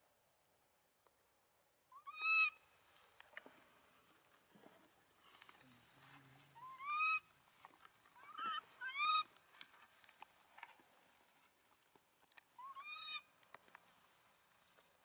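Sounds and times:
infant monkey crying: 6.6 - 7.2, 8.2 - 9.2.

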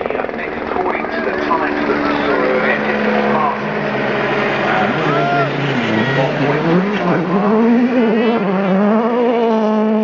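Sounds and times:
rally car engine accelerating: 1.1 - 10.0.

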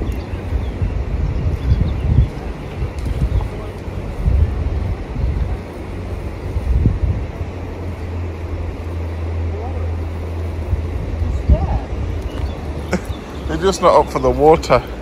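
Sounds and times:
steady low hum: 0.0 - 15.0
wind buffeting microphone: 0.0 - 15.0.

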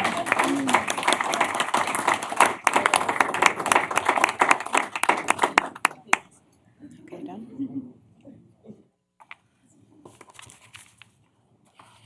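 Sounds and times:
crowd applauding: 0.0 - 6.2.

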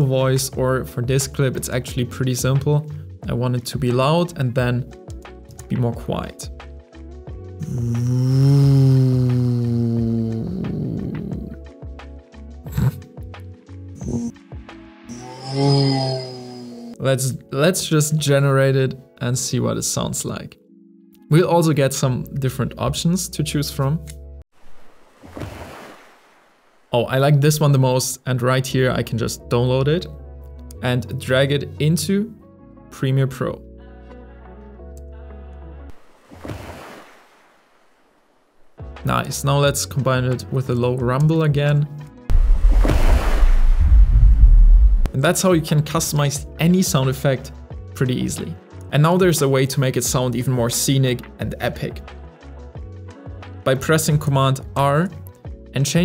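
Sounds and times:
background music with ticking beat: 0.2 - 15.0, 45.0 - 56.0
man imitating crashing waves: 7.6 - 11.6, 15.1 - 17.0
waves crashing against rocks: 24.7 - 26.7, 42.3 - 45.0.

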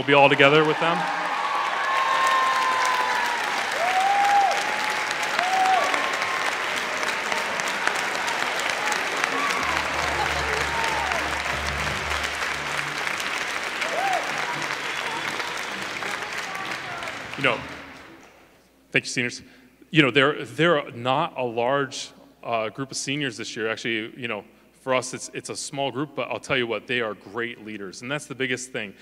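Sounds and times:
cheers: 0.0 - 18.2
audience applauding: 0.0 - 18.4.

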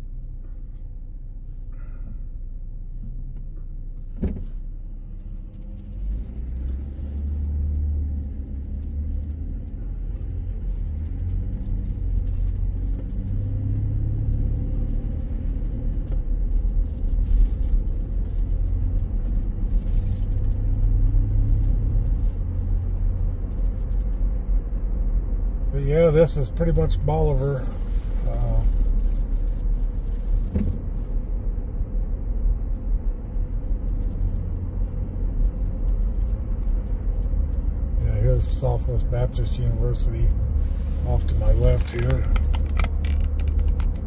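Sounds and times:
car engine and road rumble: 0.0 - 44.0.

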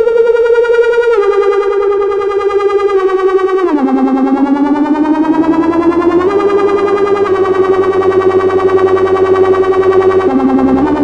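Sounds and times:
pulsing synthesizer note: 0.0 - 11.0.

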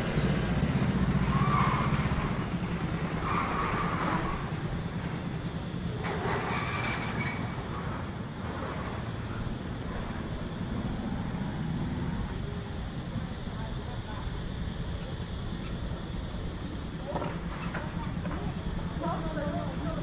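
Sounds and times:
car and motorbike engines: 0.0 - 20.0.

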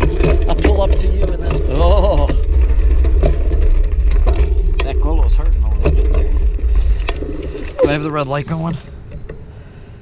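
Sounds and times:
tyres clicking on gravel: 0.0 - 9.4
wind buffeting microphone: 0.0 - 10.0.

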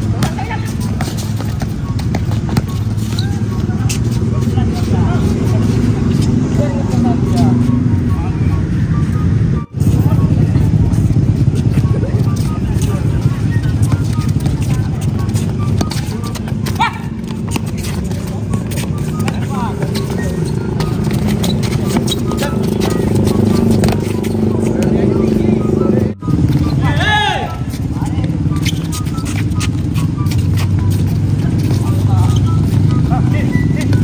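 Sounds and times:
players and spectators calling out: 0.0 - 34.0.

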